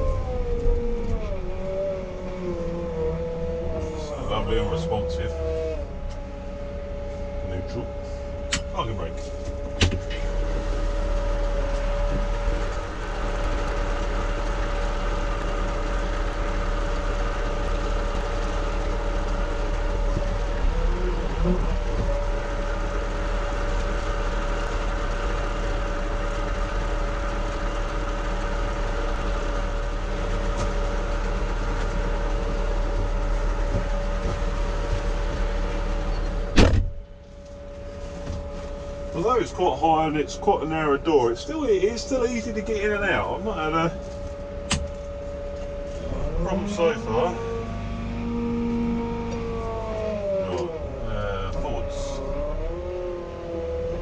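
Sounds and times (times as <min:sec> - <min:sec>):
diesel engine idling with whine: 0:00.0 - 0:54.0
cab door shutting: 0:09.6 - 0:10.4, 0:36.2 - 0:37.0.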